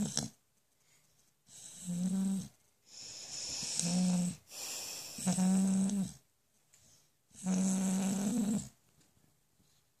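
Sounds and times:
dog snoring: 0:00.0 - 0:00.4, 0:01.5 - 0:06.2, 0:07.3 - 0:08.8.

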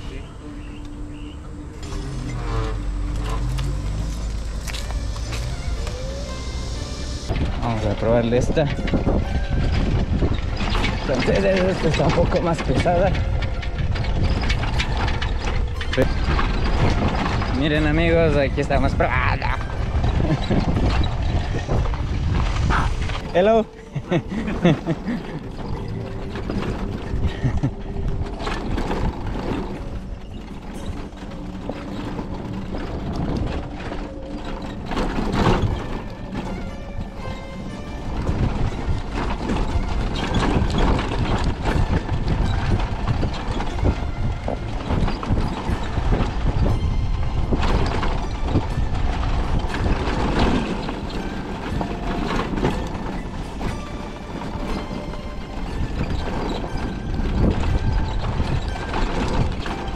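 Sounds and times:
motorcycle low rumble: 0:00.0 - 0:59.9
rattling knocks over ruts: 0:00.7 - 0:59.9.

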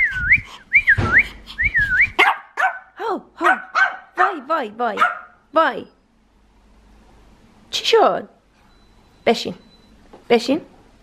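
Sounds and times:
person whistling: 0:00.0 - 0:02.2.

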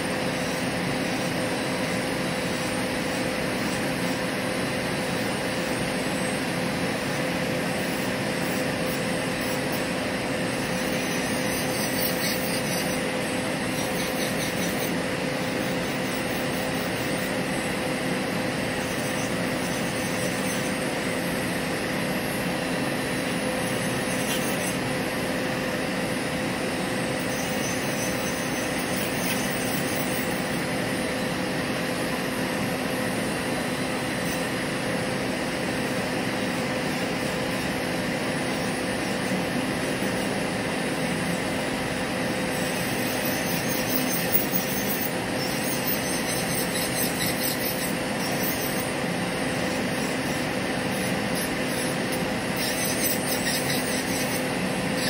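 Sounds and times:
electric nail drill whining: 0:00.0 - 0:55.0
sanding band grinding acrylic: 0:10.8 - 0:17.3, 0:42.5 - 0:49.0, 0:49.6 - 0:55.0.

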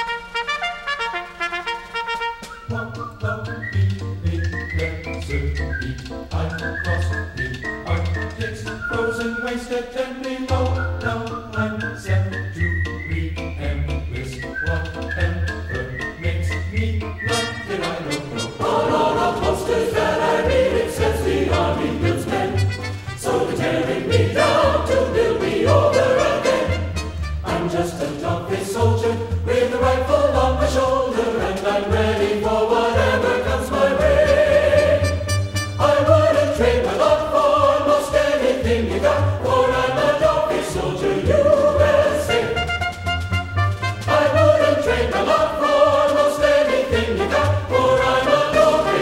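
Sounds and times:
military band playing a march: 0:00.0 - 0:02.7, 0:24.0 - 0:27.7, 0:41.3 - 0:49.0
choir singing held chords: 0:08.0 - 0:12.2, 0:16.5 - 0:42.8, 0:43.9 - 0:49.0.

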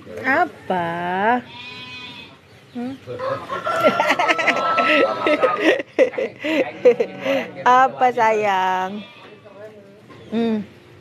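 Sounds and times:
chickens clucking: 0:02.2 - 0:07.8
long held chicken call: 0:03.2 - 0:05.6.

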